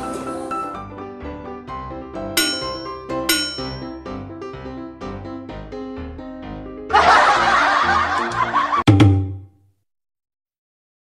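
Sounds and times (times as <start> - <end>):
light plucked background music: 0.0 - 9.5
canned laughter: 6.9 - 8.9.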